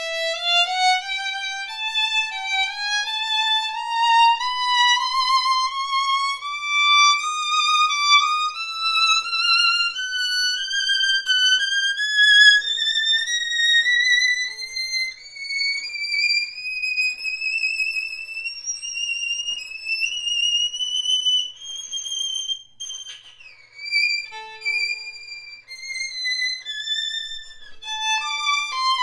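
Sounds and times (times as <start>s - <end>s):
solo violin bowed: 0.0s - 29.0s.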